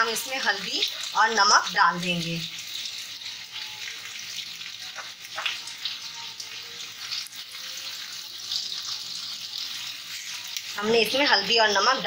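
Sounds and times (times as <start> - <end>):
potatoes sizzling in oil: 0.0 - 12.0.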